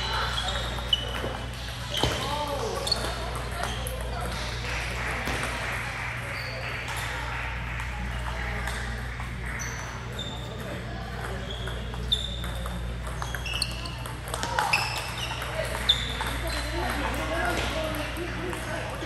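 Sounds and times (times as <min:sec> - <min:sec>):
table tennis balls clicking: 0:00.1 - 0:05.7, 0:06.8 - 0:19.0.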